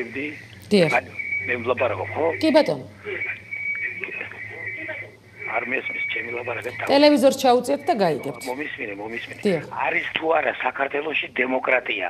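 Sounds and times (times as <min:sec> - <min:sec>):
low hum: 0:00.0 - 0:10.2.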